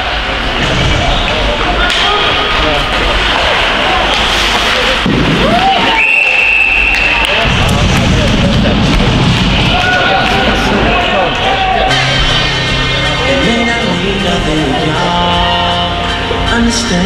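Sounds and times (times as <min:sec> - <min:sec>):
referee whistle blast: 0:05.8 - 0:07.4
hall rumble: 0:07.3 - 0:17.0
voices shouting: 0:09.5 - 0:13.6.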